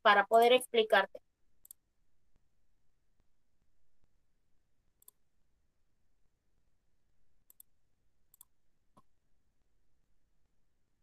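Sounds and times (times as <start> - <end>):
computer mouse clicks: 1.6 - 1.8, 5.0 - 5.2, 7.4 - 7.7, 8.3 - 9.1.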